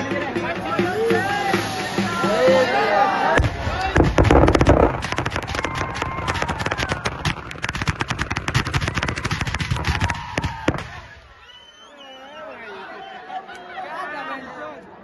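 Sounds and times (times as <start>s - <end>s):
firecrackers banging: 0.9s - 11.4s.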